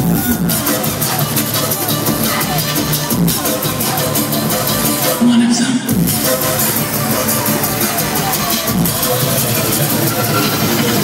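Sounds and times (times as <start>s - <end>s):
loud electronic music: 0.0s - 11.0s.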